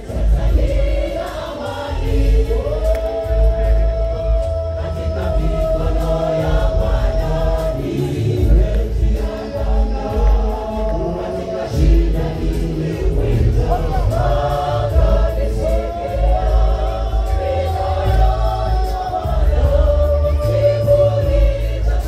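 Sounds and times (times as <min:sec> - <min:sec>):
gospel choir singing: 0:00.0 - 0:22.0
heavy pulsing bass: 0:00.0 - 0:22.0
lead vocalist singing: 0:00.0 - 0:22.0.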